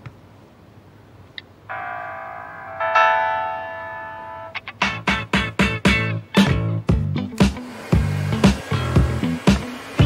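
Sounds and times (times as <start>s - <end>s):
electronic two-note doorbell chime: 1.7s - 4.6s.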